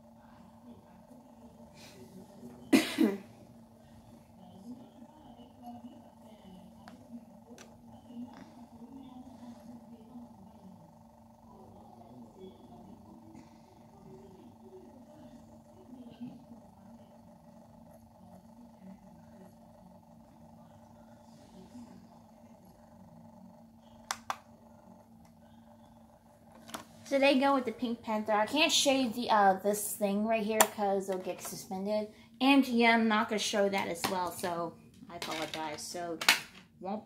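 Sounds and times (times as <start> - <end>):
faint muffled voices: 0.0 - 27.8
steady low hum: 0.0 - 37.0.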